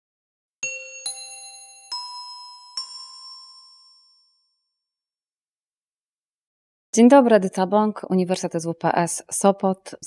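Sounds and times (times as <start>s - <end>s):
bell-like chime notes: 0.6s - 5.0s.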